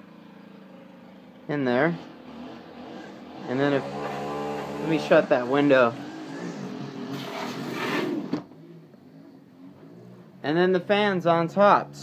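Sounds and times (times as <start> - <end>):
outdoor background noise: 0.0 - 12.0
window sliding shut: 7.0 - 8.5.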